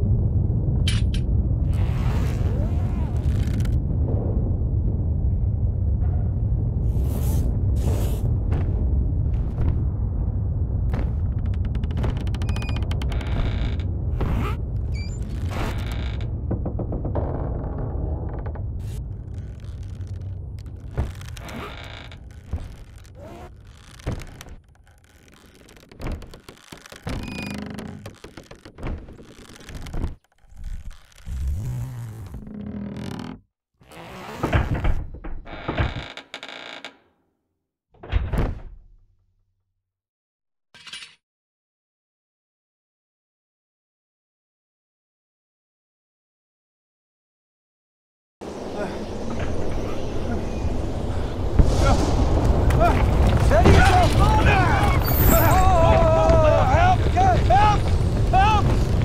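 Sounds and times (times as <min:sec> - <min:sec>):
heavy low rumble with crackle: 0:00.0 - 0:33.4, 0:48.4 - 0:59.0
thuds and knocks: 0:10.8 - 0:14.5, 0:15.4 - 0:18.8.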